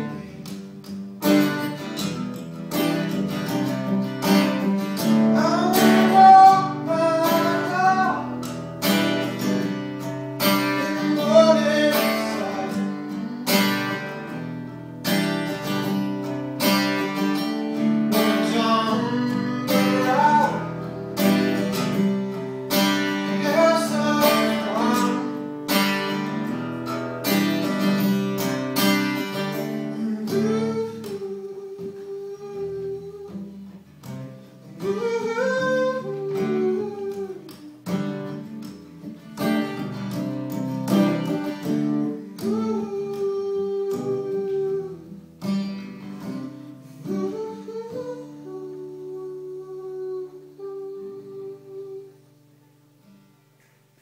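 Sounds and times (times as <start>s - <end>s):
man singing: 0.0s - 0.9s, 4.2s - 8.6s, 10.4s - 14.4s, 17.0s - 25.8s, 29.1s - 33.6s, 34.6s - 38.3s, 41.0s - 45.6s, 46.2s - 52.2s
acoustic guitar strumming: 0.0s - 54.0s.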